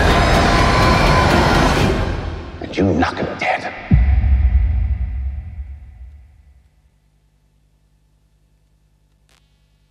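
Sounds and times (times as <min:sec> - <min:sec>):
dense rumbling horror sound design: 0:03.9 - 0:06.8.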